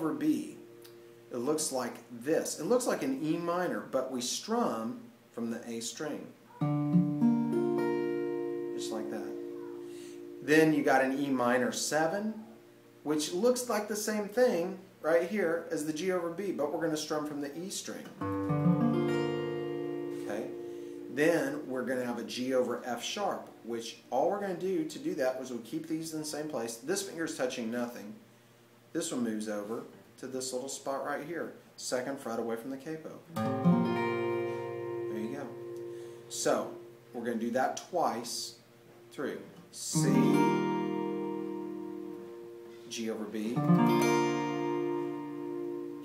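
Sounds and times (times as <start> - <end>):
acoustic guitar chord strummed: 0.2 - 1.4, 6.6 - 11.6, 18.2 - 21.7, 33.3 - 37.4, 39.9 - 46.0.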